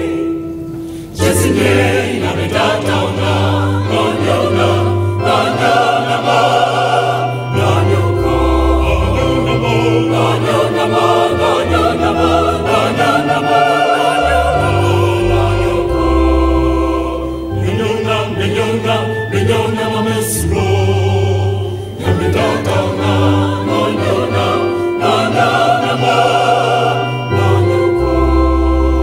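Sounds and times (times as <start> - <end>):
choir singing in parts: 0.0 - 29.0.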